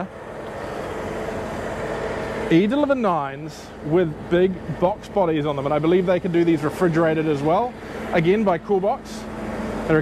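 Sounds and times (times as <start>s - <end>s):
diesel generator running: 0.0s - 10.0s.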